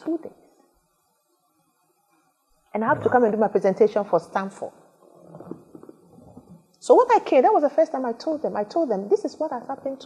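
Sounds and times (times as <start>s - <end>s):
woman speaking: 0.0s - 0.3s, 2.8s - 4.7s, 5.3s - 10.0s
faint low murmur: 2.8s - 3.5s, 5.0s - 6.6s.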